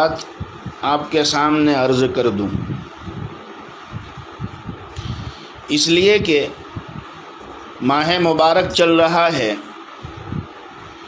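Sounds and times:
steady background hiss: 0.0s - 11.0s
low rumbling thumps: 2.4s - 7.6s, 10.0s - 10.8s.

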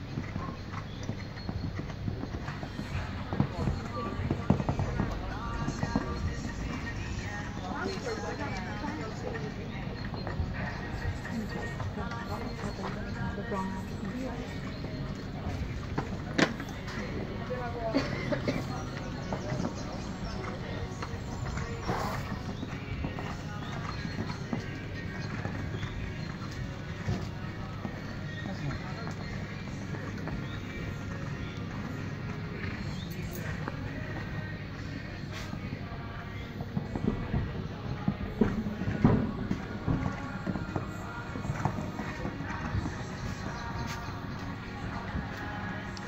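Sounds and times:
horse hoofbeats on sand: 0.0s - 46.0s.

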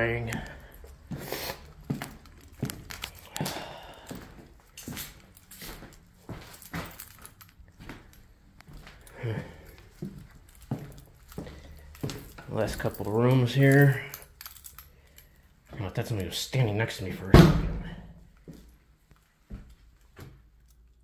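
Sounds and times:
footsteps on bare floor: 0.0s - 13.0s.

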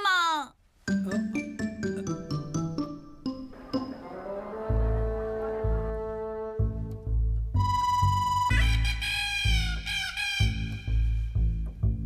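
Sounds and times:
plucked bass beat: 6.6s - 12.0s
sliding high melody: 7.6s - 9.6s.

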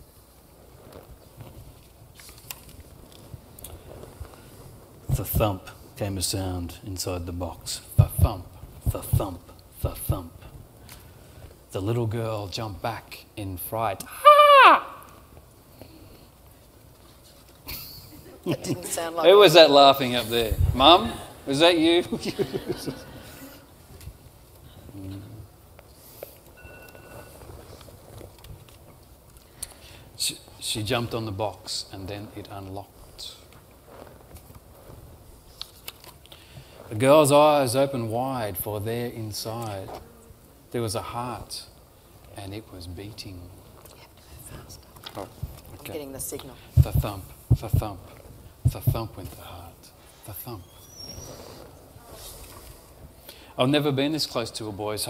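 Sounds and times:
book pages turning: 0.6s - 5.1s, 26.2s - 29.6s, 33.4s - 36.8s.

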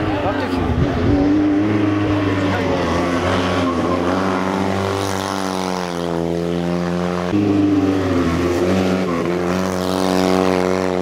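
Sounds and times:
rally car engine revving: 0.0s - 11.0s.

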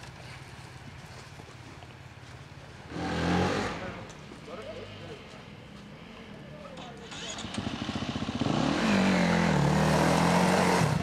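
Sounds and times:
dirt bike engine revving: 2.9s - 4.0s, 7.1s - 11.0s.

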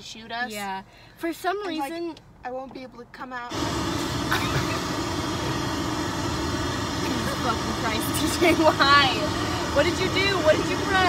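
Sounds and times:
car engine and cabin rumble: 1.3s - 11.0s.

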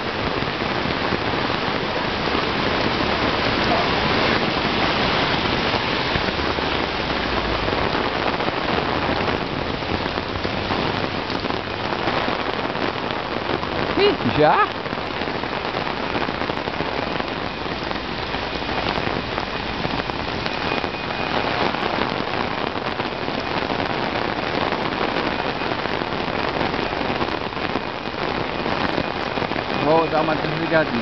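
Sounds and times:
heavy rain on street: 0.0s - 31.0s.

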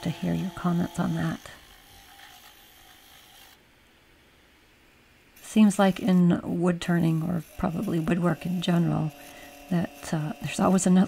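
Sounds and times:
faint background hiss: 3.6s - 5.8s.

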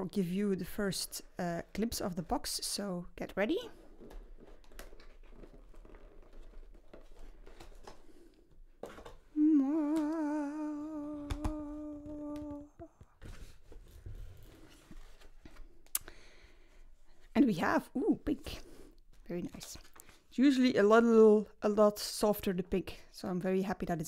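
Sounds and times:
cardboard box being opened: 3.8s - 9.2s
woman humming one note: 9.4s - 12.9s.

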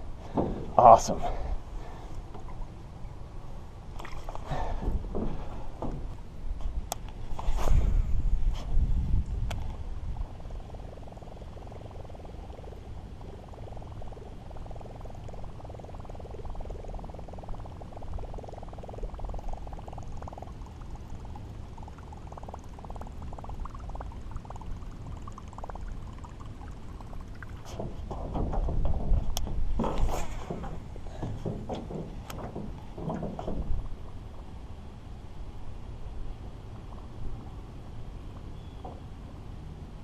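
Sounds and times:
water splashing: 3.9s - 5.6s, 11.5s - 34.3s
wind on microphone: 4.1s - 20.5s, 27.0s - 34.4s
water lapping against boat: 11.8s - 34.2s.

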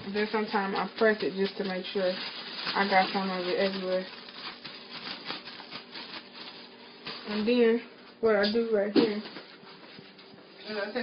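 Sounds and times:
plastic bag crinkling: 0.0s - 7.7s.

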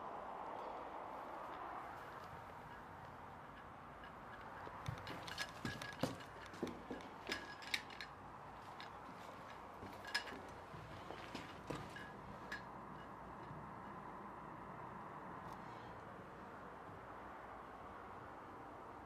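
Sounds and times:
light sharp clicks and clinks: 1.5s - 14.0s.

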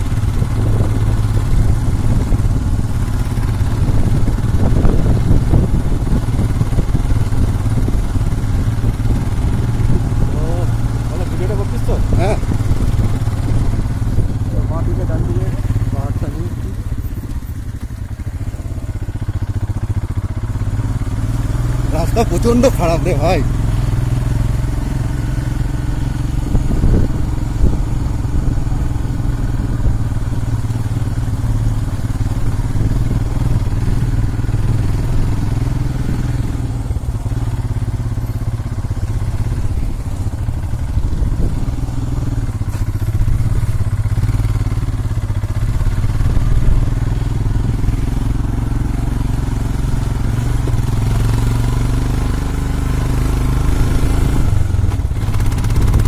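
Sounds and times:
motorcycle engine running: 0.0s - 56.0s.

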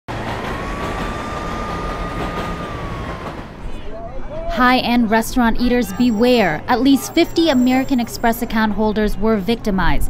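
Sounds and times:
steady whine: 0.1s - 3.9s
vehicle rumbling: 0.1s - 8.8s.

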